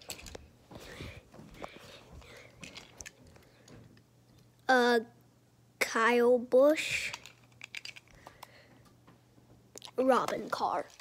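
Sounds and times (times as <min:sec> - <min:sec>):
toy cars clicking: 0:07.1 - 0:08.4.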